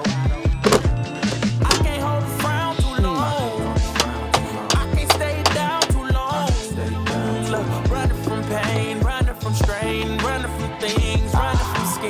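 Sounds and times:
hip-hop background music: 0:00.0 - 0:12.0.

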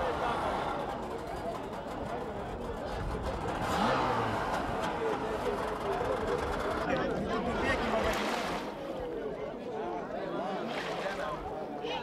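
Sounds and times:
people's voices: 0:00.0 - 0:12.0
boat engine running: 0:00.1 - 0:08.8.

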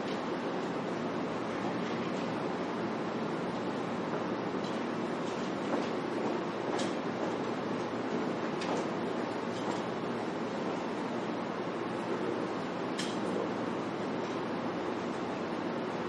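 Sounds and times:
steady background noise: 0:00.0 - 0:16.0.

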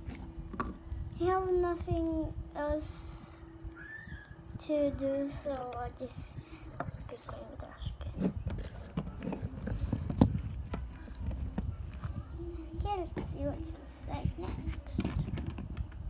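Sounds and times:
child's voice: 0:01.2 - 0:03.5, 0:04.5 - 0:08.4, 0:12.2 - 0:15.4
fingers rubbing a phone: 0:08.0 - 0:13.2.

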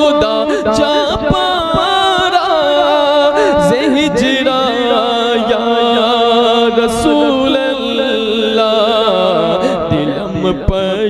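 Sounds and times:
man singing melismatic note: 0:00.0 - 0:11.0.

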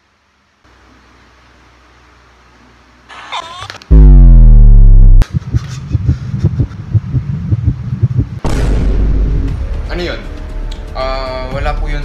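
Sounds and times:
distorted buzzy falling tone: 0:03.2 - 0:05.6
bass-heavy music with quick beat: 0:03.9 - 0:08.4.

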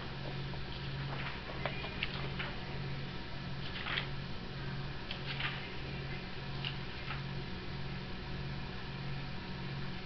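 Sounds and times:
low room hum: 0:00.0 - 0:10.0
paper pages rustling: 0:00.7 - 0:02.6, 0:03.6 - 0:04.1.

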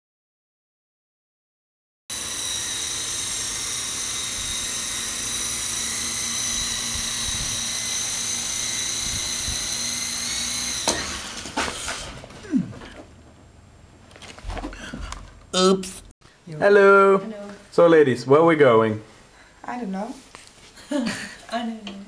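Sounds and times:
toy helicopter whine: 0:02.1 - 0:11.6.

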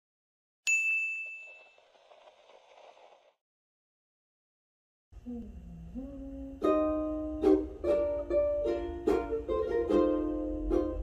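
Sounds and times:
bright bell-like ding: 0:00.7 - 0:01.6.

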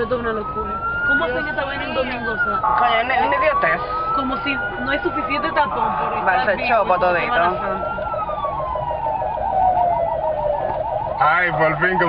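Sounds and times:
emergency siren yelping: 0:00.0 - 0:12.0.

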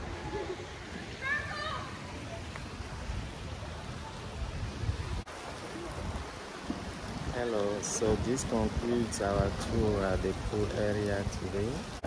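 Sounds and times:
wind buffeting microphone: 0:02.8 - 0:12.0.

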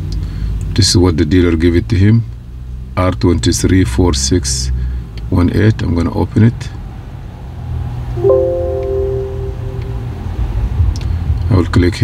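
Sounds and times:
two-tone electronic chime: 0:08.2 - 0:10.2.

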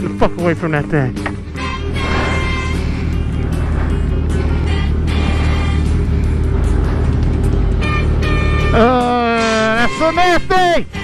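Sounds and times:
music: 0:00.0 - 0:11.0
motorcycle engine running: 0:01.2 - 0:09.4.

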